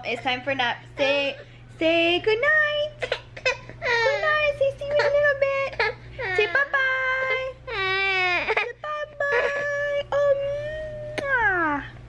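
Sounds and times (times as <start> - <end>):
baby crying: 3.4 - 4.4, 5.0 - 8.8.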